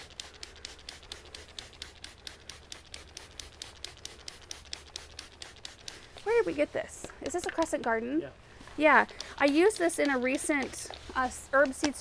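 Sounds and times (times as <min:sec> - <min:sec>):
spray bottle spraying: 0:00.0 - 0:07.7, 0:08.9 - 0:12.0.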